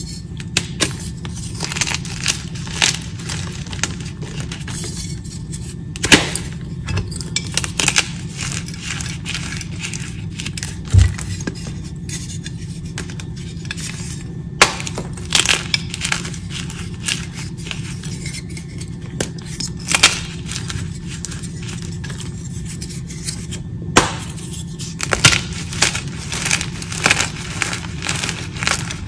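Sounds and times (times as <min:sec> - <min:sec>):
steady low hum: 0:00.0 - 0:29.0
chalk crunching and crackling: 0:07.6 - 0:14.3, 0:15.3 - 0:23.6, 0:24.2 - 0:29.0.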